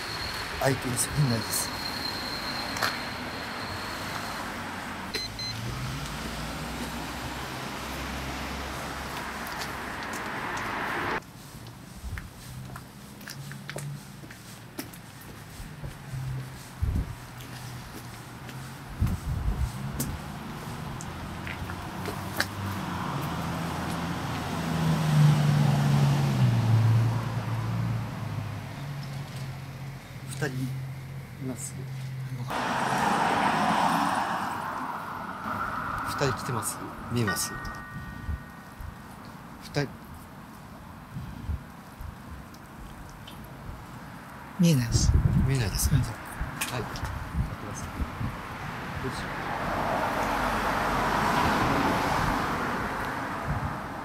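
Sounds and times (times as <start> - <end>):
car driving past: 4.0 - 11.2, 21.6 - 29.0, 32.5 - 38.6, 49.1 - 54.0
short high beeps: 5.1 - 5.6, 35.9 - 38.8.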